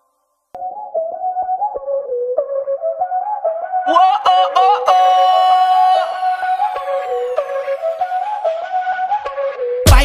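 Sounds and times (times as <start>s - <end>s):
bending lead melody: 0.6s - 9.9s.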